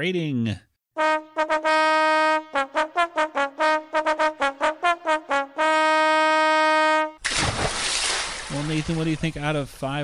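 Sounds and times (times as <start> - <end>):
brass fanfare: 1.0 - 7.2.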